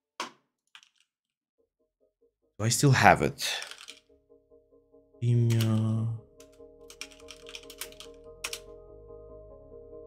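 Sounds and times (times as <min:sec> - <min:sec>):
quiet background music: 0:02.0 - 0:10.0
keyboard typing: 0:03.6 - 0:04.0, 0:05.3 - 0:08.7.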